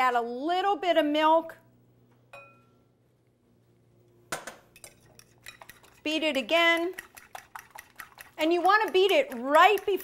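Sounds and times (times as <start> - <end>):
fork beating eggs in a bowl: 4.7 - 10.0.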